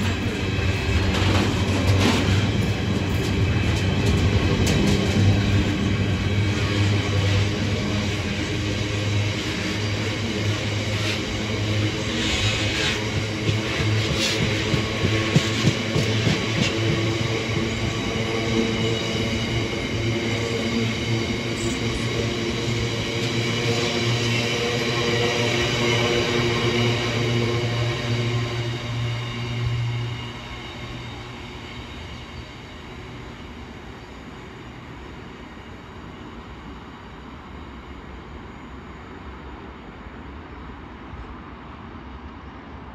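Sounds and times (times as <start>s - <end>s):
freight train wheels rumbling on rail: 0.0s - 42.9s.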